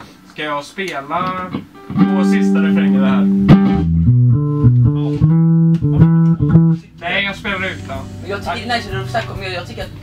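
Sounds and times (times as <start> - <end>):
amplified guitar plucked low notes: 1.2 - 9.3.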